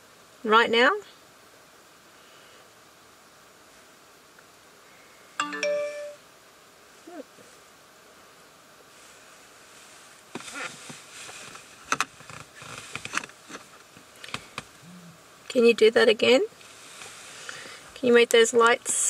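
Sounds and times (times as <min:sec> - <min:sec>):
electronic chime: 0:05.4 - 0:06.2
light rustling: 0:08.9 - 0:14.8, 0:16.6 - 0:18.4.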